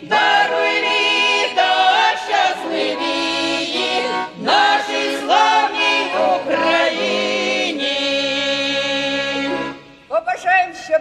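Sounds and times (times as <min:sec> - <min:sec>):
women singing in harmony: 0:00.0 - 0:09.9
button accordion: 0:00.0 - 0:10.0.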